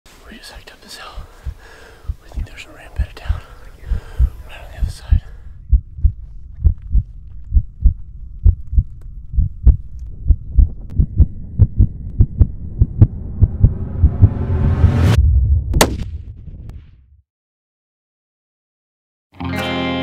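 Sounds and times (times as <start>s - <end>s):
heartbeat thumps: 1.0s - 15.9s
rising swell: 10.9s - 15.8s
sharp crack: 15.7s - 16.8s.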